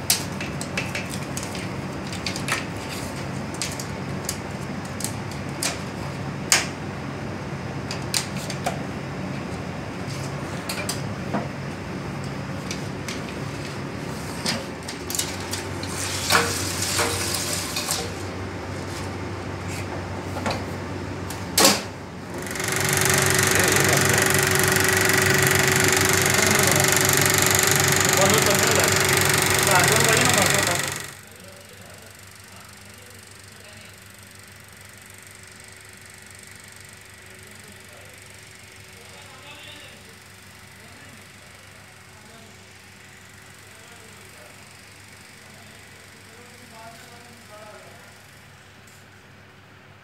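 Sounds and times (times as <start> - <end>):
film projector whirring and clattering: 0.0 - 50.0.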